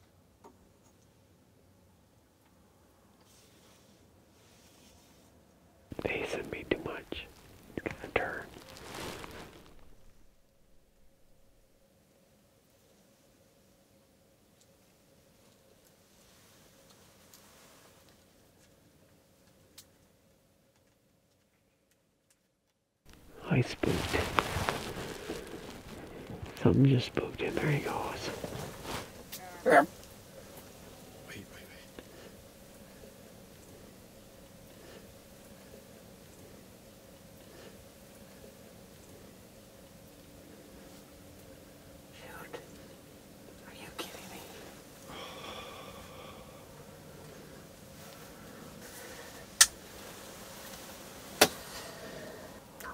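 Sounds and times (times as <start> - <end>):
man whispering: 5.9 - 9.5, 23.1 - 29.1, 31.1 - 32.3, 42.1 - 42.9, 43.6 - 46.8.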